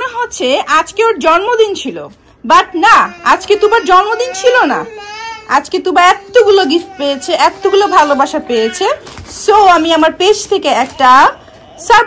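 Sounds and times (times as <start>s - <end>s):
woman talking high-pitched: 0.0s - 12.0s
toddler fussing and whining: 2.8s - 9.9s, 10.7s - 12.0s.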